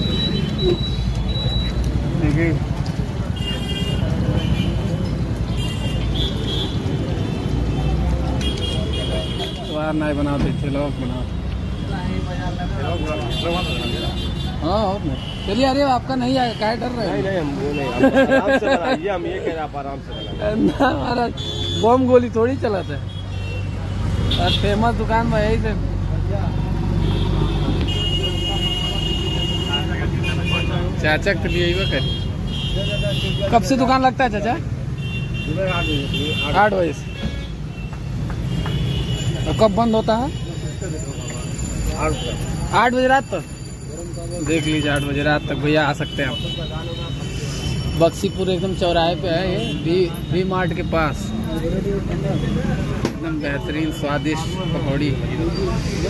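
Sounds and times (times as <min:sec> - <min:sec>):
traffic rumble: 0:00.0 - 0:56.0.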